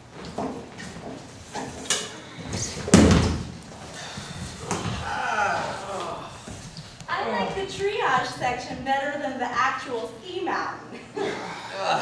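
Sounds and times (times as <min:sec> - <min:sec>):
heavy thump: 0:02.8 - 0:03.6.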